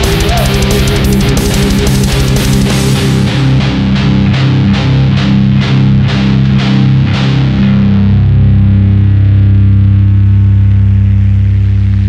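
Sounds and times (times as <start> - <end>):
metal band drum and guitar hits: 0.0 - 5.8
distorted electric guitar chord ringing: 0.0 - 12.0.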